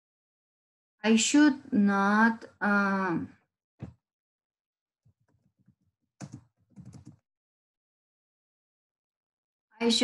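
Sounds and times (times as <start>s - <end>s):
faint keyboard typing: 5.3s - 7.2s.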